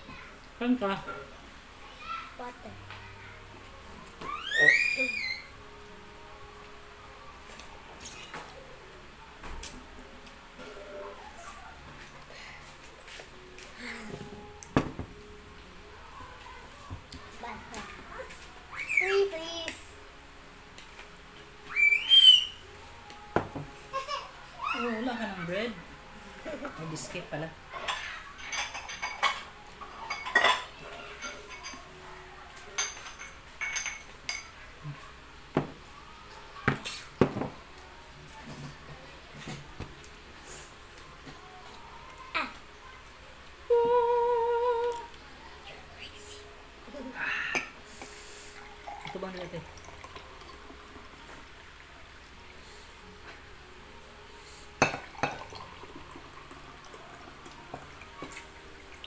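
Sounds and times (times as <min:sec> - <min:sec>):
high pitched vocal call: 0:21.7 - 0:22.6
cutlery clinking on a plate: 0:27.8 - 0:31.8, 0:32.8 - 0:34.6
person humming: 0:43.7 - 0:45.2.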